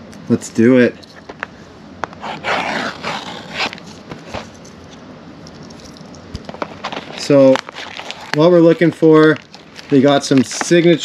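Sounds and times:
plastic wrap rustling: 6.5s - 11.0s.

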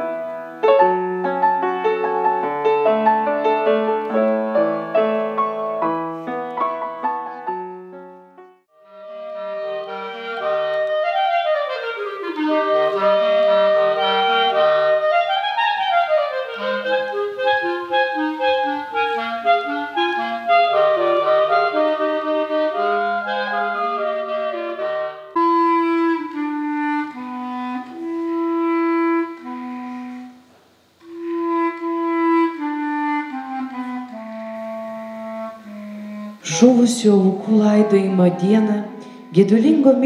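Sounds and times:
clarinet trio playing: 0.0s - 8.0s, 8.8s - 40.0s.

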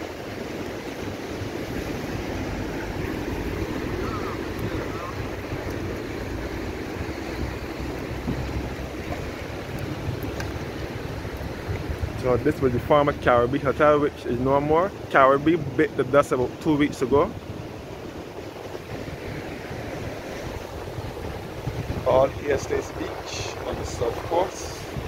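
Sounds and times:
sea waves breaking on rocks: 0.0s - 25.0s
wind buffeting microphone: 0.0s - 25.0s.

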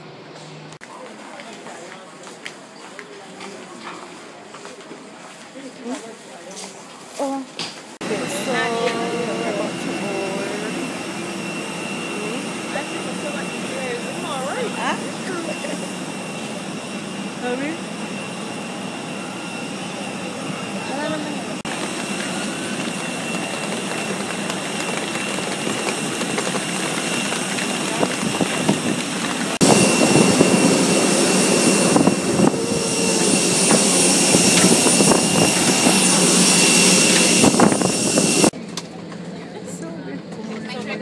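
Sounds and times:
crowd murmuring: 8.0s - 37.9s
jet engine whine: 8.0s - 41.0s.

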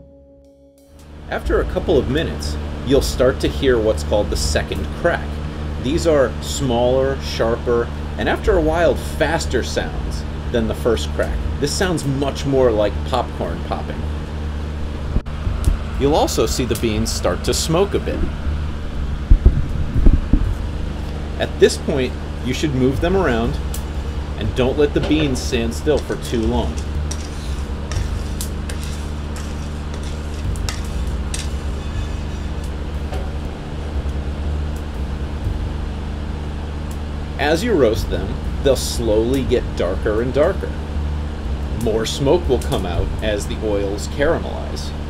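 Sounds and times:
steady low hum: 0.0s - 45.0s
gas stove and fan rumble: 1.0s - 45.0s
spatula scraping beans in pan: 26.0s - 32.8s.

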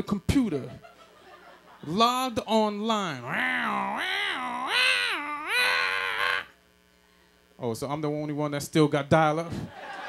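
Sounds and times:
man imitating dial-up modem: 2.5s - 6.5s.

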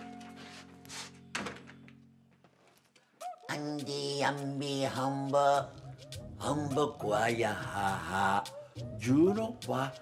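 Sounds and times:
door thunk shut: 1.3s - 1.8s.

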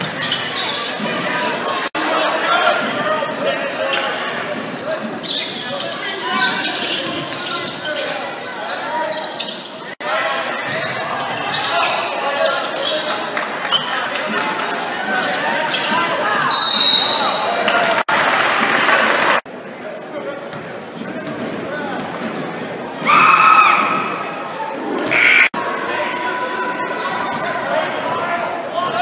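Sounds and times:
crowd chattering and calling out: 0.0s - 23.1s, 23.7s - 29.0s
referee's whistle: 16.5s - 17.4s, 25.1s - 25.5s.

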